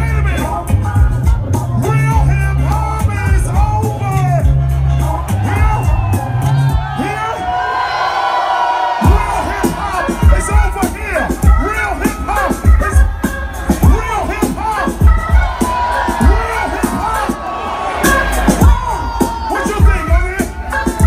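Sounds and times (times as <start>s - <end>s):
crowd voices: 0.0s - 21.0s
hip hop through concert speakers: 0.0s - 21.0s.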